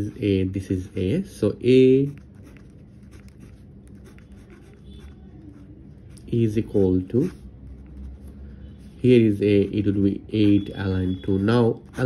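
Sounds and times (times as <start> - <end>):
pen scratching on paper: 1.9 - 8.3, 11.6 - 12.0.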